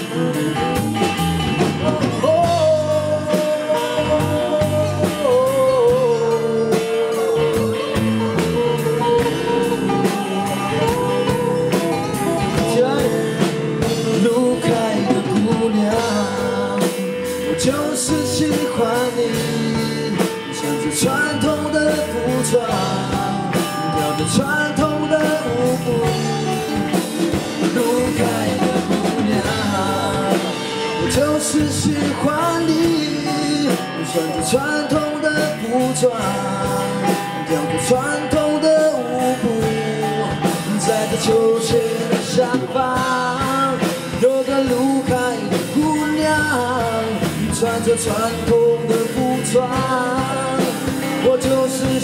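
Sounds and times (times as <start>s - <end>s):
live rock band playing: 0.0s - 52.0s
man singing into microphone: 0.0s - 52.0s.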